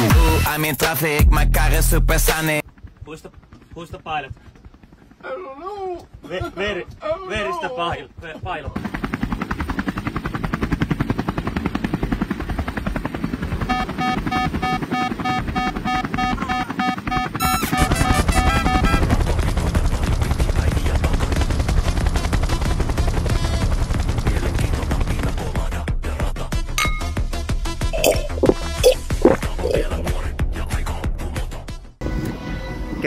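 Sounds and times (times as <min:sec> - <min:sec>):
helicopter rotor blade chop: 0:02.3 - 0:25.4.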